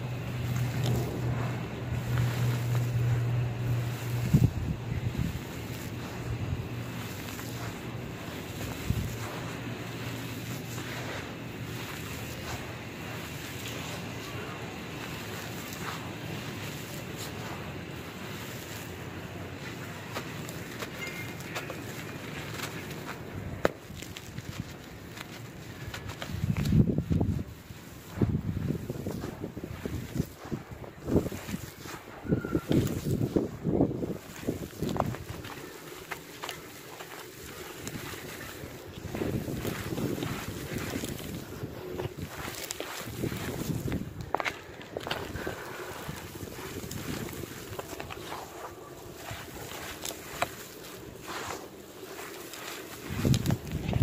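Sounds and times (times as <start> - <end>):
charcoal crumbling and pouring: 0.0 - 54.0
low hum: 0.0 - 54.0.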